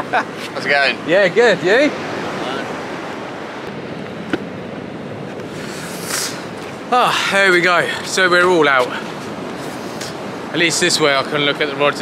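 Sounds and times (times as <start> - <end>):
surf washing on sandy beach: 0.0 - 12.0.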